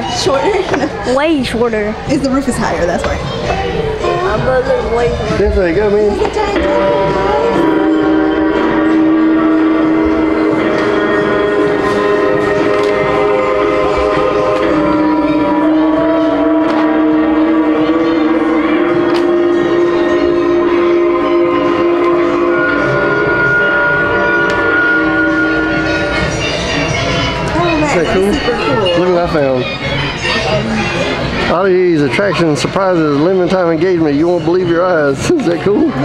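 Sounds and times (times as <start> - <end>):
droning chord of held notes: 5.6 - 29.8.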